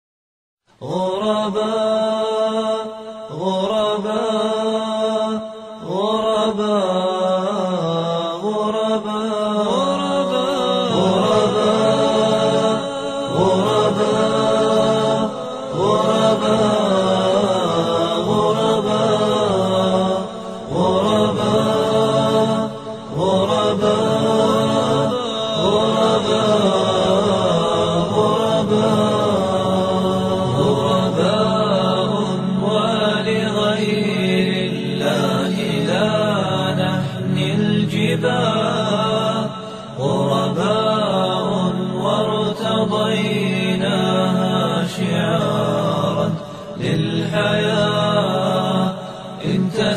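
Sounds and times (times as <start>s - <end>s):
a cappella group chanting: 0.8s - 49.9s
low held vocal drone: 0.8s - 49.9s.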